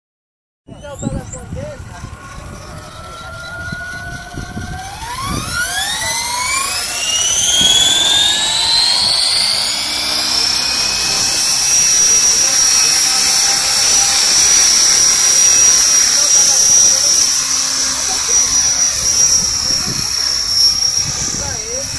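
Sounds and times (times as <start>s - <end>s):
model helicopter motor whine: 0.8s - 21.9s.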